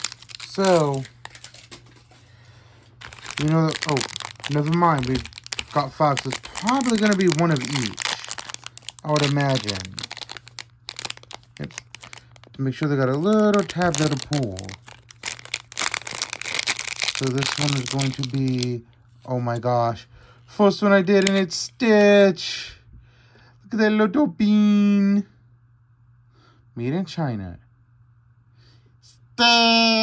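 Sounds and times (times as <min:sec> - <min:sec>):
foil bags rustling: 0:00.0 - 0:19.6
steady low hum: 0:00.0 - 0:30.0.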